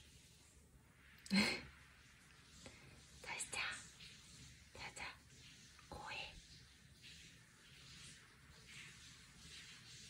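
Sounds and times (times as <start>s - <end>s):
person whispering: 3.2s - 4.0s, 4.8s - 5.2s, 5.8s - 6.4s.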